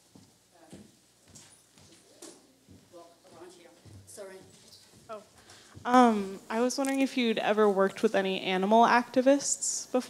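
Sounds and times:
faint footsteps on a stage floor: 0.0s - 6.1s.

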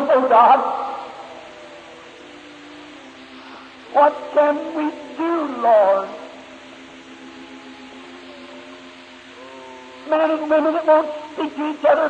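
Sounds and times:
faint steady tones: 0.0s - 12.0s
recording hiss: 0.0s - 12.0s.

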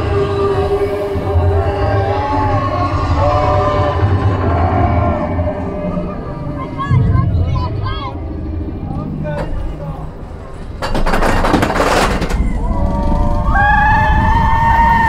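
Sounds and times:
people's voices: 0.0s - 15.0s
roller coaster rumbling on track: 0.0s - 15.0s
people whooping: 12.3s - 15.0s.

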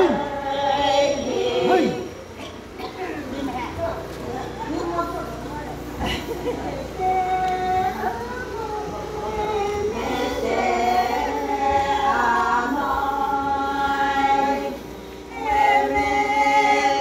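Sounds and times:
women singing unaccompanied: 0.0s - 17.0s.

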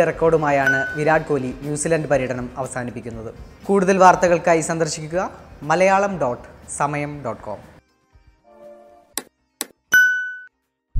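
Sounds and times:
bright bell-like ding: 0.6s - 1.1s, 9.9s - 10.5s.

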